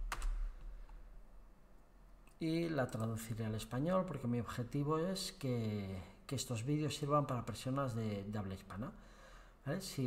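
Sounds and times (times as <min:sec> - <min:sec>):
computer keyboard keystrokes: 0:00.0 - 0:00.6.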